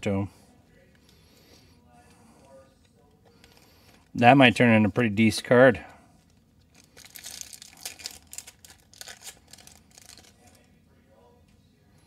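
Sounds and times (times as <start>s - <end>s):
foil wrapper tearing and crinkling: 6.7s - 10.6s.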